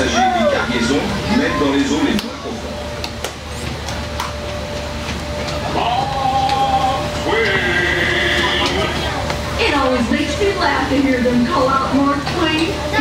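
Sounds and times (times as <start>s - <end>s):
man calling over loudspeaker: 0.0s - 2.6s, 5.7s - 9.0s
steady hum: 0.0s - 13.0s.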